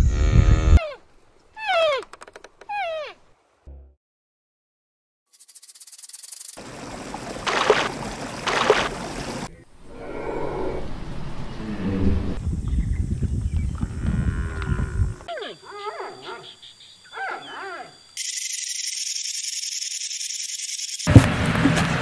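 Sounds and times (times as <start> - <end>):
animal whining cries: 0.6 - 1.0, 1.6 - 2.0, 2.7 - 3.2, 14.8 - 18.0
low rumbling noise: 9.7 - 15.2.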